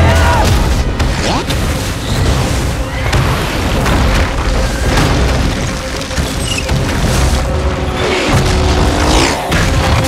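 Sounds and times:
booming debris impacts: 0:00.0 - 0:10.0
dramatic film score: 0:00.0 - 0:10.0.

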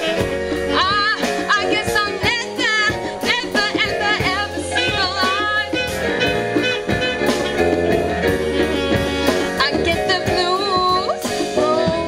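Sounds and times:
woman singing: 0:00.0 - 0:06.0, 0:09.5 - 0:12.0
congas: 0:00.0 - 0:12.0
drum kit: 0:00.0 - 0:12.0
electric keyboard: 0:00.0 - 0:12.0.

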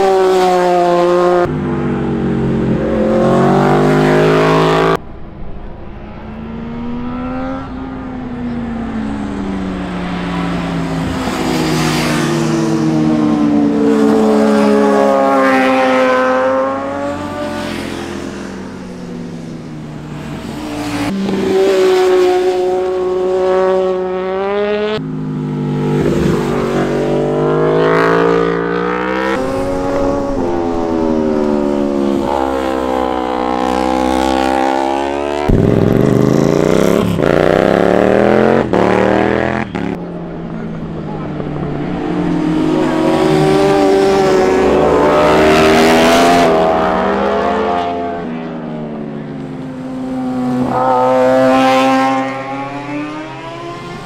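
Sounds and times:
motorcycles passing: 0:00.0 - 0:54.0
motorcycle accelerating hard: 0:06.3 - 0:54.0.

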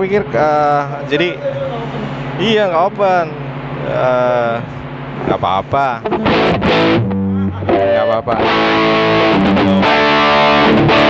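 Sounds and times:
distorted electric guitar chords: 0:02.1 - 0:11.0.

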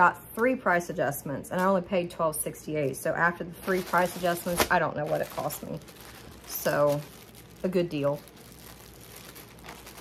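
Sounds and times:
plastic packaging crinkling: 0:02.8 - 0:10.0.

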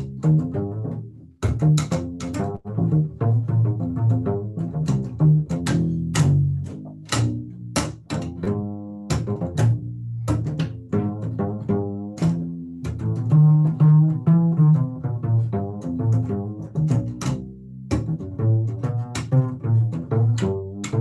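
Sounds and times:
plucked upright bass: 0:00.0 - 0:21.0.

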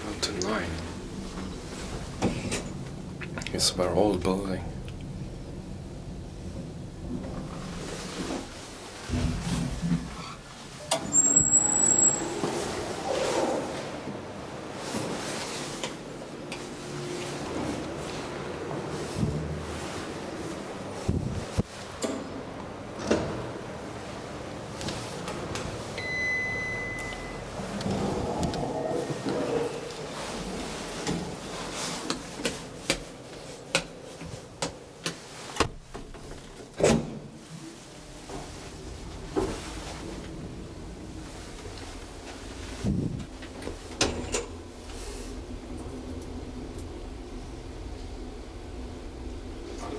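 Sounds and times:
elevator car humming: 0:00.0 - 0:36.7, 0:37.5 - 0:49.9
elevator doors sliding and clunking: 0:00.0 - 0:49.9
longer lower beep: 0:26.0 - 0:27.4
short high beep: 0:26.0 - 0:27.4.

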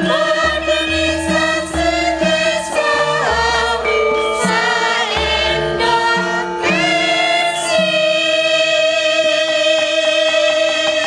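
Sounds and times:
gamelan accompaniment: 0:00.0 - 0:11.0
women singing long held notes: 0:00.0 - 0:11.0.

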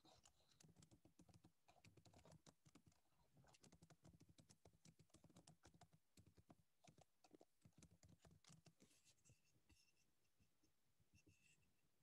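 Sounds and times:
typing on computer keyboard: 0:00.0 - 0:08.8.

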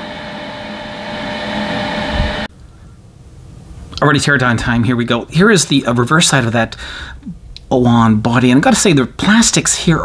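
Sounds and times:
electrical appliance whirring: 0:00.0 - 0:02.5.

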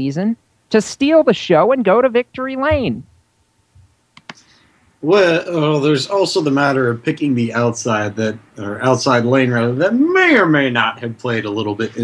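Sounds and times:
short sharp clicks: 0:04.1 - 0:04.5.

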